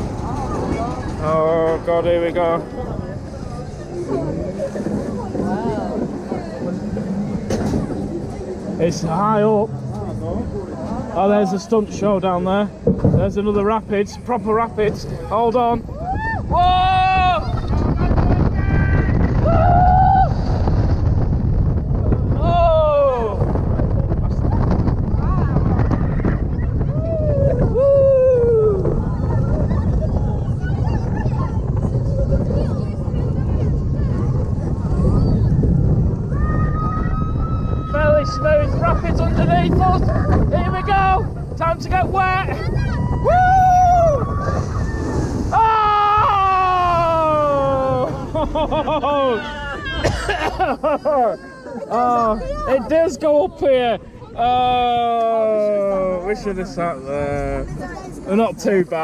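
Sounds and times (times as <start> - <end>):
wind rushing: 0.0 - 50.1
ride rumble: 0.0 - 59.0
riders screaming: 36.2 - 38.7, 42.6 - 48.3.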